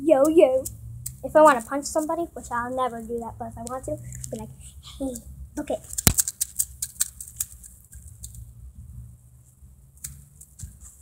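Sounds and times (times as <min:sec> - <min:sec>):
toy spring coils clicking: 0:00.2 - 0:01.2, 0:05.9 - 0:08.4
low room hum: 0:06.6 - 0:11.0.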